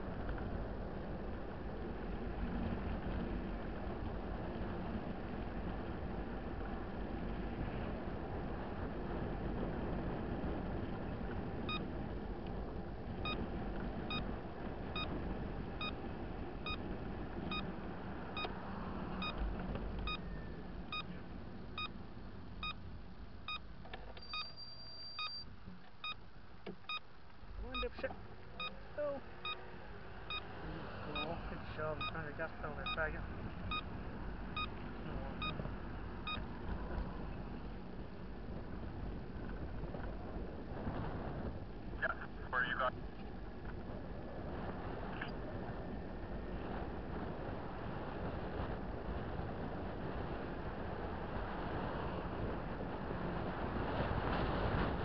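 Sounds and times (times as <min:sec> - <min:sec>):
motorcycle wind and road rumble: 0:00.0 - 0:55.0
turn-signal beeps: 0:11.7 - 0:11.9, 0:13.2 - 0:13.4, 0:14.1 - 0:14.3, 0:15.0 - 0:15.2, 0:16.6 - 0:16.8, 0:17.5 - 0:17.7, 0:18.4 - 0:18.6, 0:19.2 - 0:19.4, 0:20.0 - 0:21.2, 0:21.8 - 0:22.0, 0:22.6 - 0:22.8, 0:23.5 - 0:26.2, 0:26.8 - 0:27.1, 0:27.7 - 0:28.8, 0:30.3 - 0:30.5, 0:31.1 - 0:33.1, 0:33.7 - 0:33.9, 0:34.6 - 0:34.8, 0:35.4 - 0:36.5.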